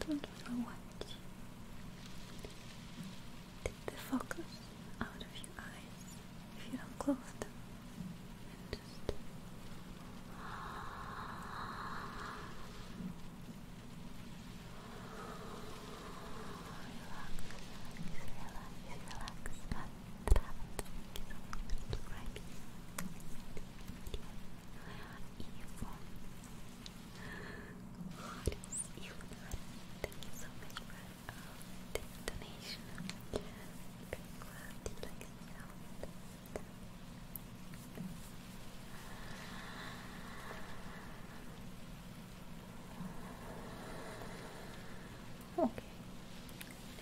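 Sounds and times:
faint steady hum: 0.0s - 47.0s
soft breathy whisper: 0.0s - 47.0s.

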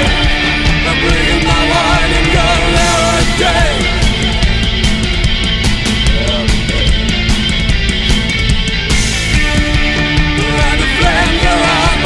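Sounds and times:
drums: 0.0s - 12.0s
electric guitar: 0.0s - 12.0s.

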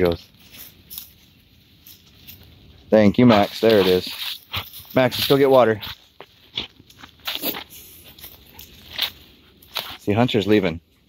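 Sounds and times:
footsteps crunching on dry leaves: 0.0s - 10.3s.

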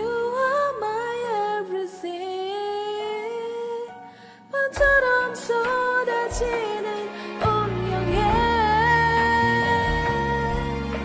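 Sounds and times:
faint backing track: 0.0s - 11.0s.

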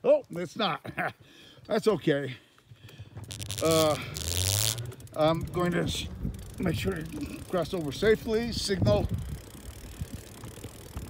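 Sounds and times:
bicycle rolling on pavement: 0.8s - 11.0s
faint bike clicks: 2.5s - 11.0s
wind rumble on microphone: 5.2s - 11.0s.

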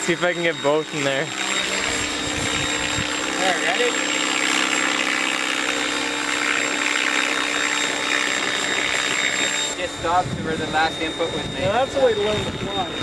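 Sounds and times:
rc helicopter whine: 0.0s - 13.0s.

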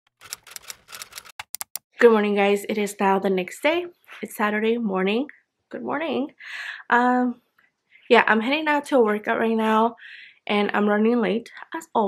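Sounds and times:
typewriter key clicks: 0.2s - 1.8s.

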